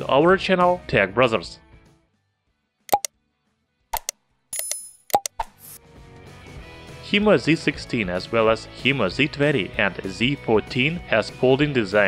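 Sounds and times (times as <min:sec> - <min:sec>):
faint background music: 0:00.0 - 0:02.7, 0:05.8 - 0:12.0
clicking and popping effects: 0:04.0 - 0:05.8.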